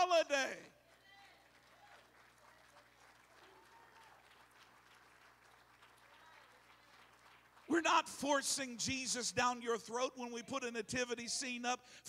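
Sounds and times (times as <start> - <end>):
faint scattered applause: 0.8 - 8.2.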